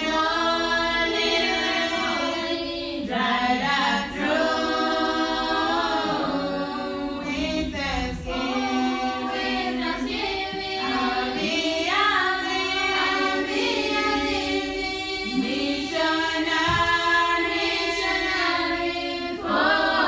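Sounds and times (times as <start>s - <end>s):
choir singing unaccompanied: 0.0s - 20.0s.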